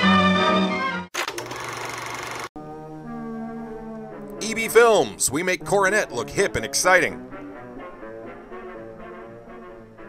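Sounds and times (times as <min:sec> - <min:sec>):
film projector clatter: 0:01.2 - 0:02.5.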